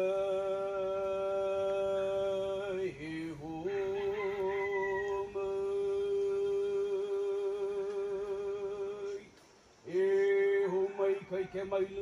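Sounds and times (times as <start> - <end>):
person singing a long chant note: 0.0 - 9.2.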